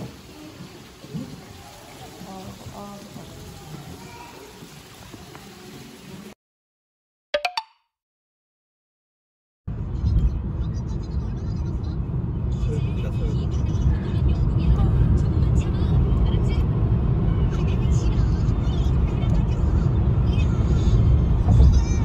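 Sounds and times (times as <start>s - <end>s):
car road noise rumble: 9.7s - 22.0s.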